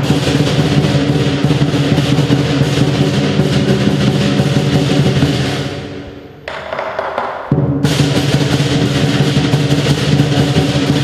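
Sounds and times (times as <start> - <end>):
cymbals clashing: 0.0 - 11.0
lion drum beating: 0.0 - 11.0.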